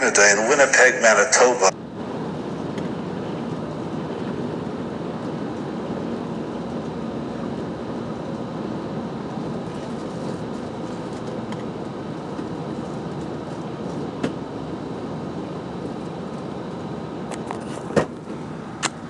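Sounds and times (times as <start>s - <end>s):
vehicle running noise: 0.0s - 19.0s.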